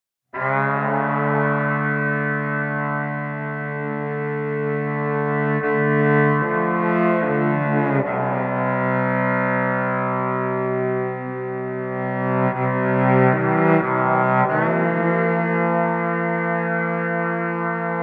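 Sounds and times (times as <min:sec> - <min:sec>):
distorted electric violin chords: 0:00.4 - 0:18.0.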